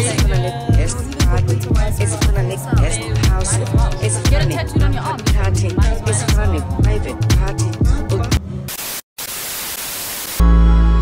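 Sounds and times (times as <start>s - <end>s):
hip-hop beat: 0.0s - 8.4s
television static hiss: 8.7s - 10.4s.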